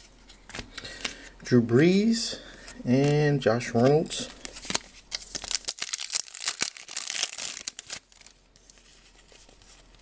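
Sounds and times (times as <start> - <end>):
wrapper tearing and crinkling: 4.5 - 8.7.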